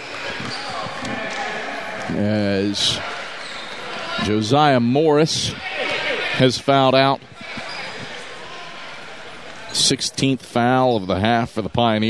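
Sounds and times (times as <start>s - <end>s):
echoing crowd murmur: 0.0s - 12.0s.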